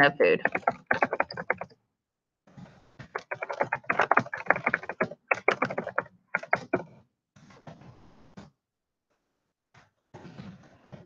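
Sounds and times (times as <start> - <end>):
rapid typing on keyboard: 0.2 - 1.7, 3.1 - 6.9.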